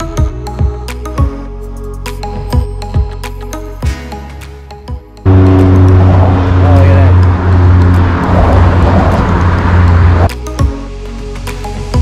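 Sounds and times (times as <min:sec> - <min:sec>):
loud engine drone: 0:05.2 - 0:10.3
rushing noise: 0:05.3 - 0:10.3.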